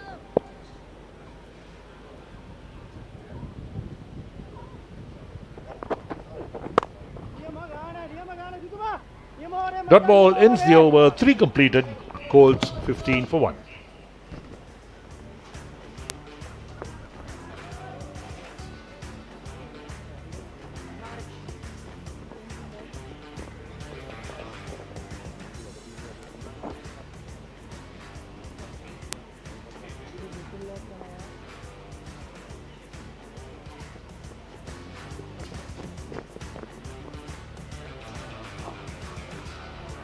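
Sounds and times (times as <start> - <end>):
indistinct voices: 5.5 - 40.0
quiet music: 5.5 - 40.0.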